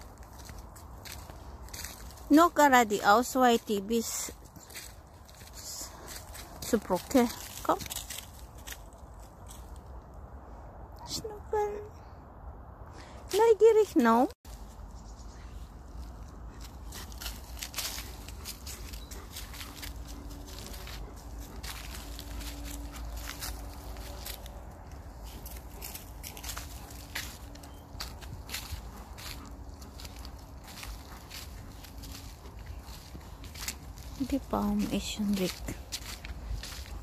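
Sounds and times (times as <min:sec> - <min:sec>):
footsteps crunching through dry leaves: 0:00.0 - 0:09.9, 0:14.5 - 0:37.0
low steady rumble: 0:14.5 - 0:37.0.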